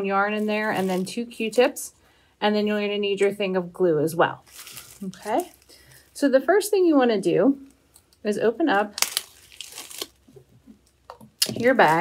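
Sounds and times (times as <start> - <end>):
plastic bag crinkling: 0.2 - 1.7, 4.4 - 6.2, 8.9 - 10.6, 11.4 - 12.0.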